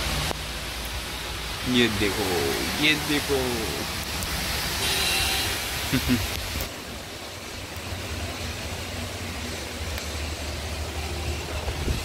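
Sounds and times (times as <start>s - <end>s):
heavy rain: 0.0s - 12.0s
tyres through water: 0.0s - 12.0s.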